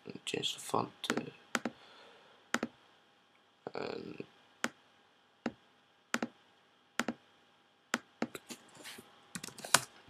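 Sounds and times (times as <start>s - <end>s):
computer keyboard keystrokes: 9.4s - 9.9s.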